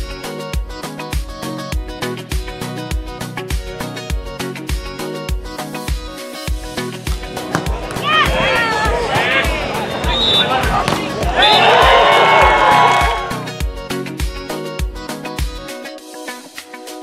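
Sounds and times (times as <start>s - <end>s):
excited shouting voices: 7.2s - 13.5s.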